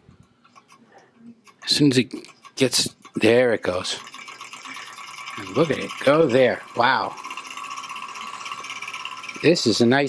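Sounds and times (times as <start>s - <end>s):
stirling engine ticking: 1.5s - 10.0s.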